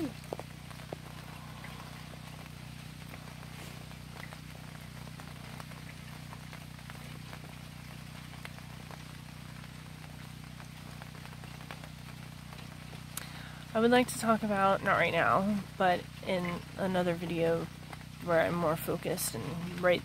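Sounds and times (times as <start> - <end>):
steady low hum: 0.0 - 20.0
steady rain: 0.0 - 20.0
water drips and ticks: 0.0 - 20.0.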